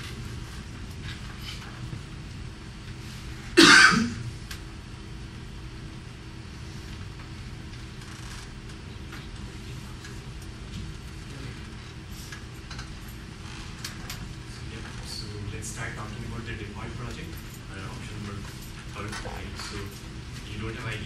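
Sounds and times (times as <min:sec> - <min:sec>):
faint steady hum: 0:00.0 - 0:21.0
loud cough: 0:03.6 - 0:04.2.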